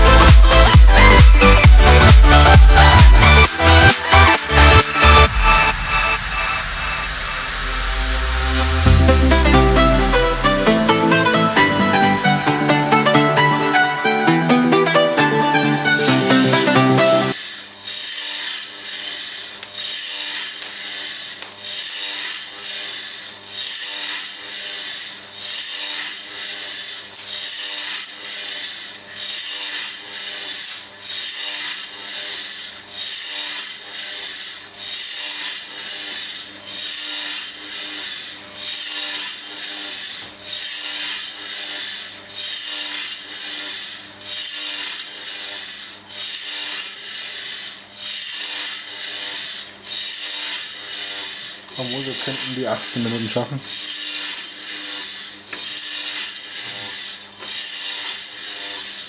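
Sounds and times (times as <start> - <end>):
low hum: 0.0 - 17.4
coffee beans tumbling in drum: 17.3 - 59.0.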